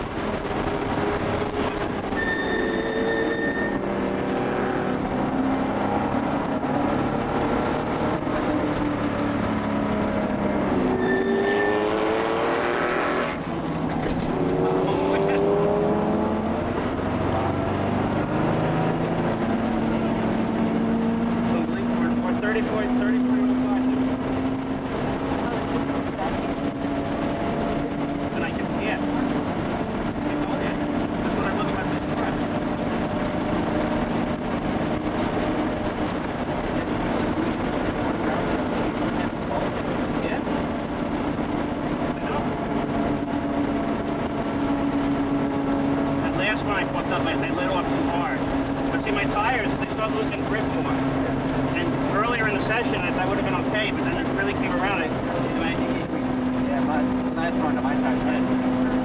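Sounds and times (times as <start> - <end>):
car engine under load from cabin: 0.0 - 11.0, 11.6 - 59.0.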